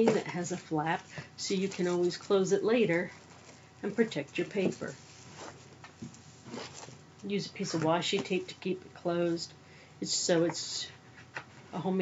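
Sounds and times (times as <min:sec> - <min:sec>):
cellophane crinkling: 0:00.4 - 0:08.3.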